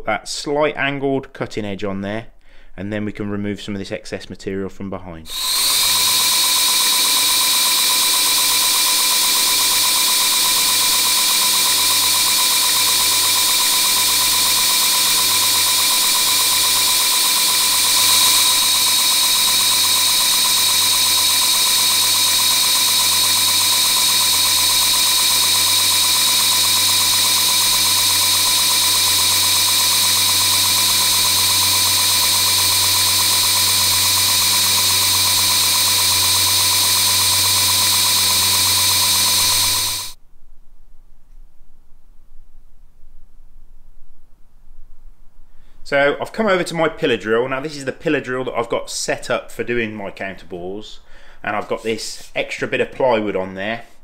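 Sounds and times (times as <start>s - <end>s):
belt grinder whining: 5.3s - 40.2s.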